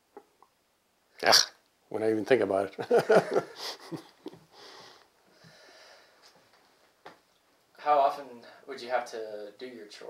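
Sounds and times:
man chuckling: 0:02.8 - 0:04.4.

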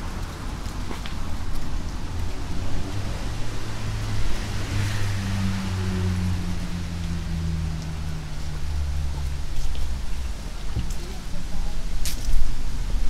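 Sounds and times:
traffic: 0:00.0 - 0:13.0.

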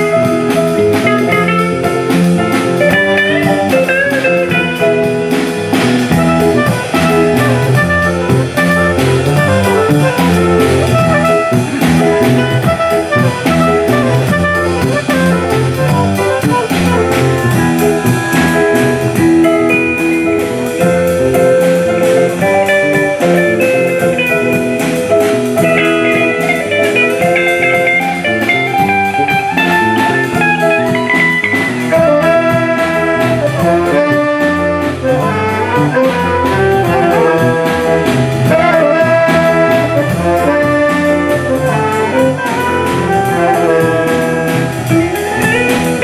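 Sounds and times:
big band playing swing jazz: 0:00.0 - 0:46.0.

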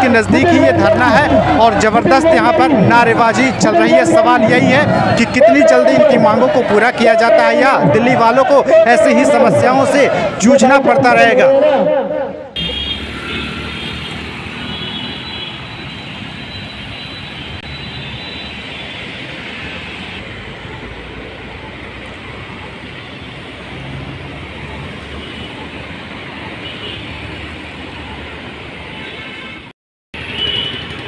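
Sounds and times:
cars and scooters passing: 0:00.0 - 0:31.0.

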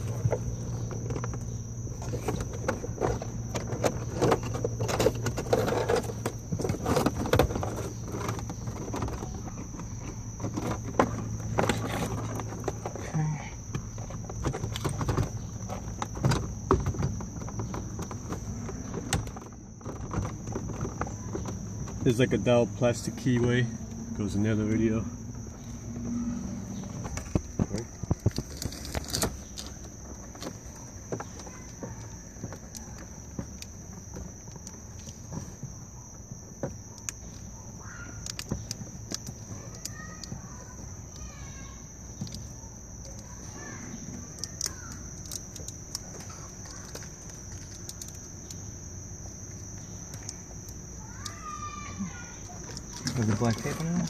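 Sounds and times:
high insect trill: 0:00.0 - 0:54.0
hands handling wires and tape: 0:27.0 - 0:35.9, 0:36.5 - 0:54.0.

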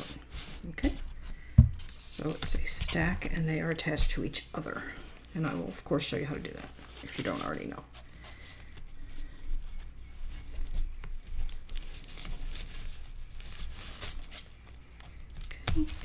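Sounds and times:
ribbon and cardstock rustling: 0:00.0 - 0:16.0.

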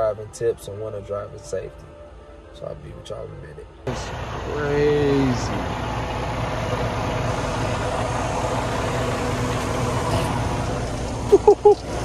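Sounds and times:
diesel truck engine idling: 0:03.9 - 0:12.0.

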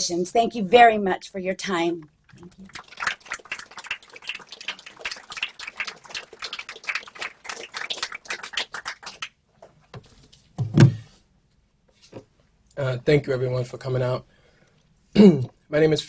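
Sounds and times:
audience applauding: 0:02.3 - 0:09.4.

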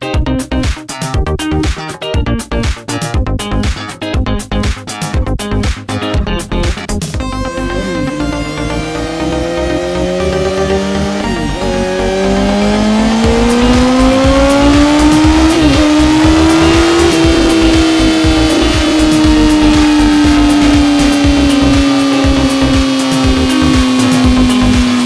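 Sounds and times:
motorcycle engine revving: 0:06.3 - 0:25.0.

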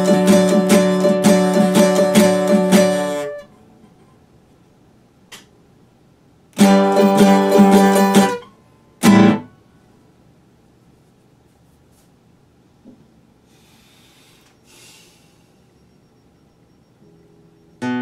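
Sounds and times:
classical guitar playing: 0:00.0 - 0:03.5, 0:06.6 - 0:09.5, 0:17.8 - 0:18.0.

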